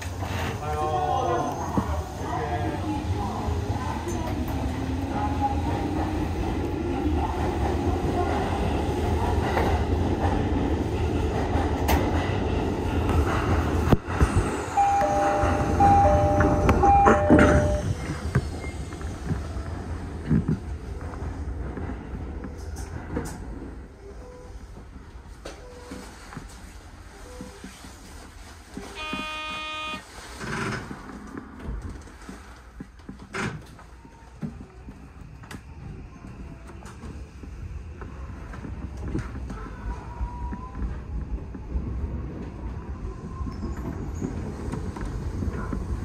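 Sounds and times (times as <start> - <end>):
standing train hum: 0.0 - 46.0
train running rumble: 0.0 - 46.0
two-pitch electronic beeps: 14.8 - 17.8.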